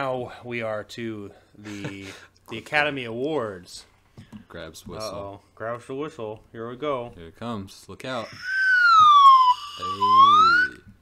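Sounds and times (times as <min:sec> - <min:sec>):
siren-like whistle blowing: 0:08.3 - 0:10.9.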